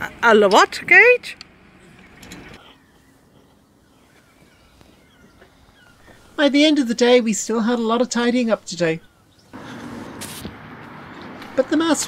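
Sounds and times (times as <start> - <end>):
faint bird chirps: 1.8 - 6.4
rustling noise: 9.6 - 11.6.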